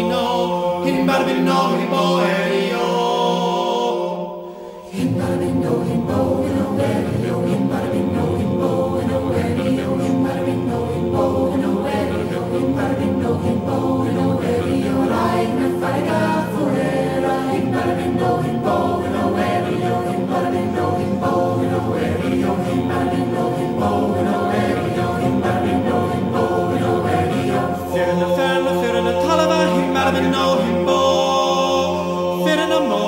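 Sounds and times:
unaccompanied choir singing: 0:00.0 - 0:33.0.

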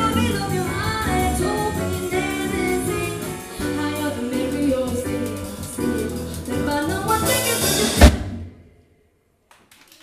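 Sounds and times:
band final drum hit: 0:07.5 - 0:08.7
faint scattered claps: 0:09.4 - 0:10.0.

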